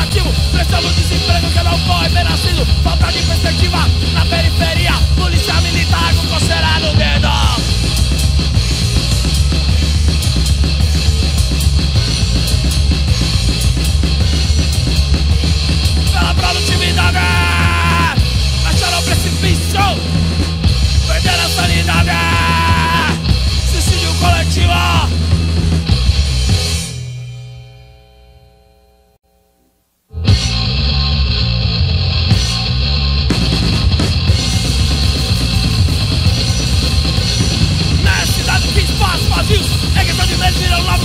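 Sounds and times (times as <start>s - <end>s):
driving drum kit beat: 0.0s - 27.3s, 30.2s - 41.0s
bass guitar: 0.0s - 29.2s, 30.1s - 41.0s
bass note ringing out: 30.1s - 41.0s.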